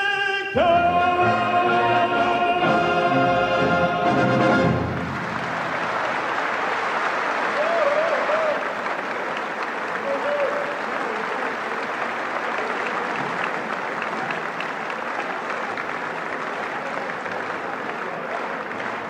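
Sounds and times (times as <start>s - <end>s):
audience applauding: 1.4s - 19.0s.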